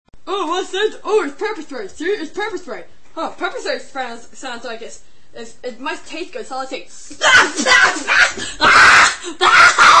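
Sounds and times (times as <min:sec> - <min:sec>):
boy screaming and wailing: 0:07.2 - 0:10.0.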